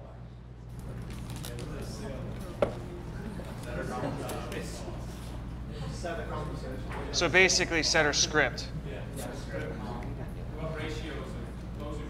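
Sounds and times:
murmur of voices: 0.0 - 12.0
room hum: 0.0 - 12.0.

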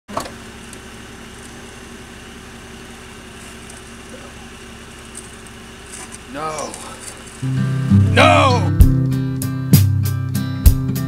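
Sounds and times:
car engine idling: 0.1 - 10.9.

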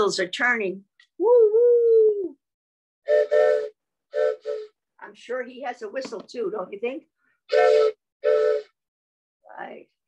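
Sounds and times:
toy train whistle blast: 3.1 - 4.8, 7.5 - 8.8.

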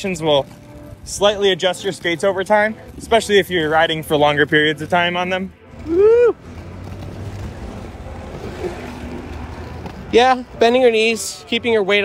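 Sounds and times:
skate wheels rolling over bricks: 0.0 - 12.0.

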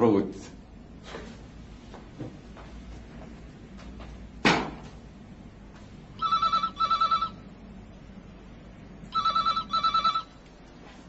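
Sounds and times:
telephone ringing: 6.2 - 7.5, 9.1 - 10.4.

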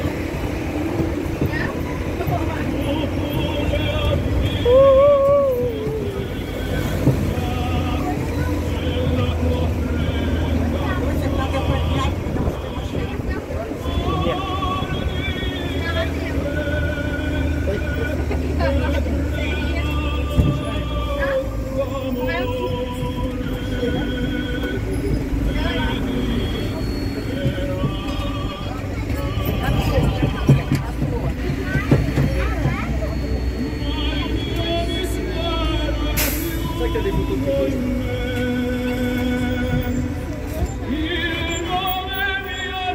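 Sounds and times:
bus engine hum: 0.0 - 42.9
low vehicle rumble: 0.0 - 42.9
music with singing voice: 0.0 - 42.9.

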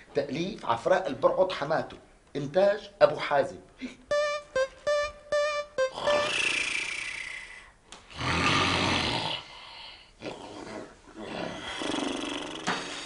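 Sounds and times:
man snoring loudly: 5.9 - 7.3, 8.1 - 9.8, 11.3 - 13.0.

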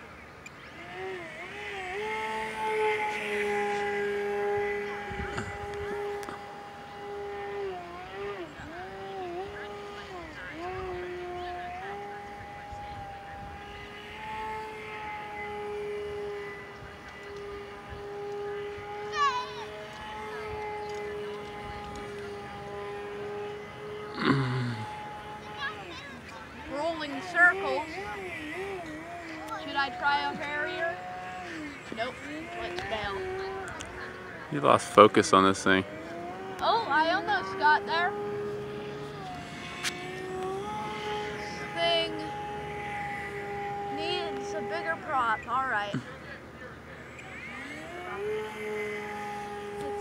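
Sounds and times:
model plane motor whining: 0.0 - 50.0.

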